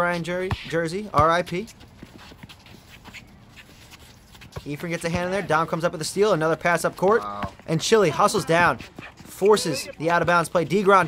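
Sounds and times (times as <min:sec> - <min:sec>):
players' footsteps on hard court: 0:00.0 - 0:11.0
basketball bouncing: 0:00.1 - 0:01.6.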